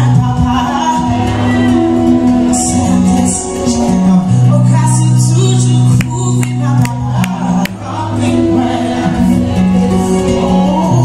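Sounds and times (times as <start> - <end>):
acoustic guitar: 0.0 - 11.0
woman singing gospel song: 0.0 - 11.0.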